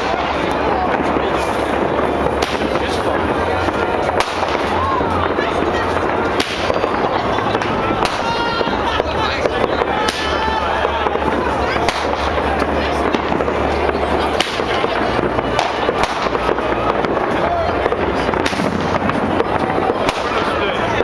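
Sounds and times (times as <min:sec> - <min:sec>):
fireworks bangs: 0:00.0 - 0:21.0
fireworks crackling: 0:00.0 - 0:21.0
people's voices: 0:00.0 - 0:21.0.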